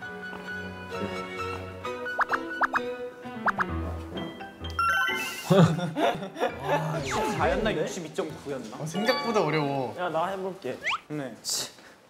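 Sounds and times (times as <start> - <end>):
light background music: 0.0 - 10.9
laughter and voices: 5.2 - 7.6
cartoon gulp bloop tones: 10.8 - 11.1.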